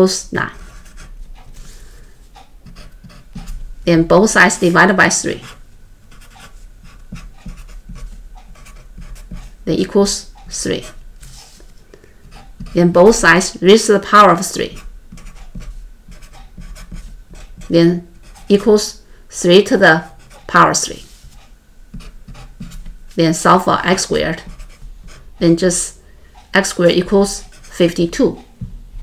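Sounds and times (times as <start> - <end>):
marker pen scratching on paper: 0.4 - 25.8, 26.6 - 28.4.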